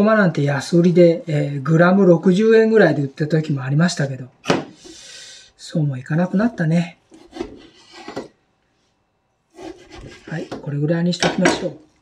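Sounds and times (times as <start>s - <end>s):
knife slicing on wooden board: 7.1s - 8.3s, 9.5s - 10.6s.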